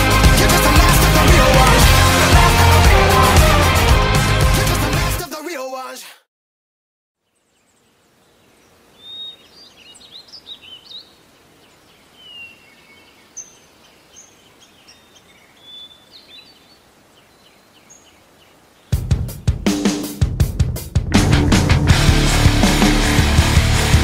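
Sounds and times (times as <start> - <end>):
loud drum kit: 0.0 - 5.2, 18.9 - 24.0
songbirds chirping: 7.2 - 20.1
soft outdoor hiss: 7.2 - 21.0.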